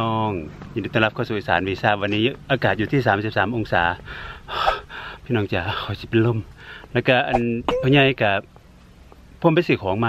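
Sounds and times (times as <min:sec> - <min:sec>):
man speaking: 0:05.3 - 0:08.5.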